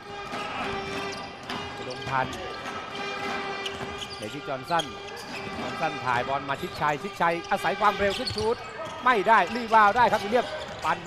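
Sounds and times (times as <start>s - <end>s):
arena music: 0.0s - 8.0s.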